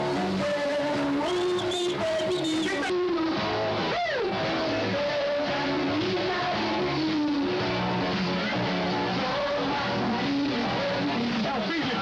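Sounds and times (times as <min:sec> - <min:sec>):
guitar music: 0:00.0 - 0:12.0.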